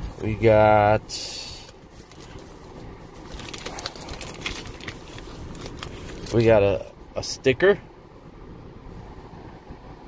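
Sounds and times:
low background rumble: 0:00.0 - 0:10.0
plastic packaging crinkling: 0:02.0 - 0:06.4.

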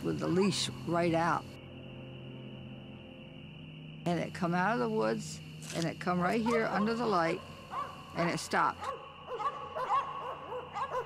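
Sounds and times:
dogs barking and yipping: 0:07.7 - 0:08.0, 0:08.8 - 0:11.0.

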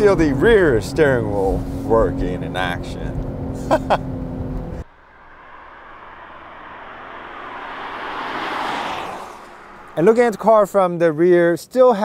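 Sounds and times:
car cabin road rumble: 0:00.0 - 0:10.8
car driving past: 0:00.4 - 0:11.1
person laughing: 0:03.6 - 0:04.1.

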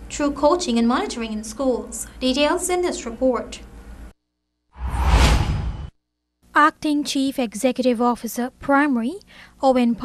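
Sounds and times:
whoosh with heavy low end: 0:04.8 - 0:05.9.

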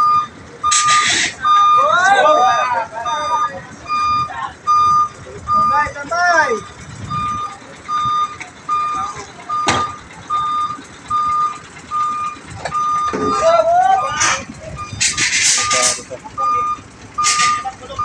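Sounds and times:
truck reversing alarm beeping: 0:00.0 - 0:18.0
men shouting: 0:01.4 - 0:03.7, 0:13.2 - 0:14.5.

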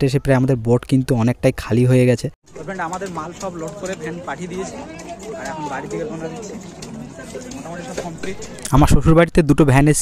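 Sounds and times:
man speaking: 0:07.6 - 0:10.0.

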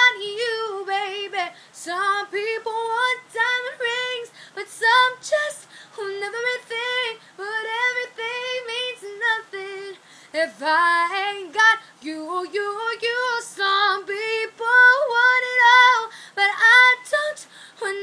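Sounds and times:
woman singing unaccompanied: 0:00.0 - 0:18.0.

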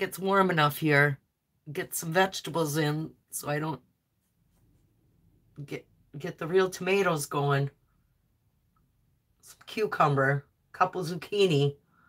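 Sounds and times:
woman speaking: 0:00.0 - 0:03.8, 0:05.6 - 0:07.8, 0:09.4 - 0:11.8.

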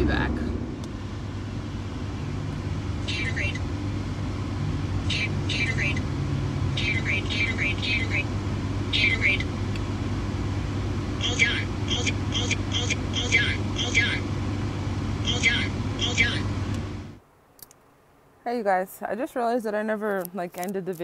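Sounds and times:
car engine and road hum: 0:00.0 - 0:17.2.

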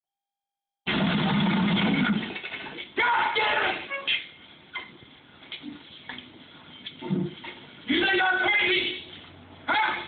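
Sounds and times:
loud noisy film commotion: 0:00.9 - 0:10.0.

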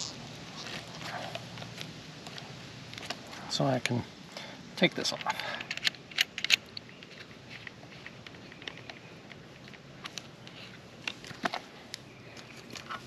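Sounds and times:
handling clicks and taps: 0:04.8 - 0:13.0.

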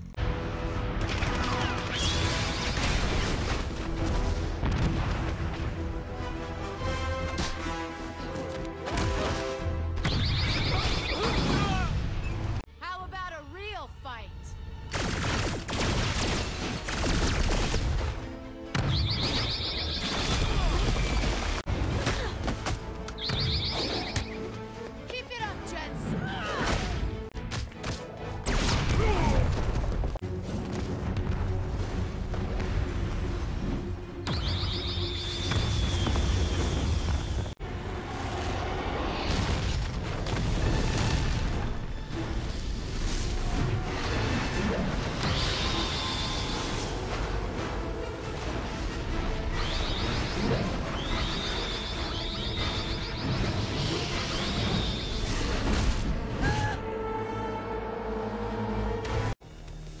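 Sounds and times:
dramatic music: 0:00.0 - 1:00.0.

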